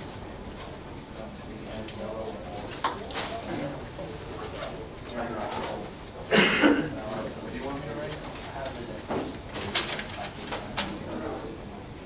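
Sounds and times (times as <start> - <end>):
students murmuring: 1.2 - 12.0
paper rustling: 7.2 - 11.0.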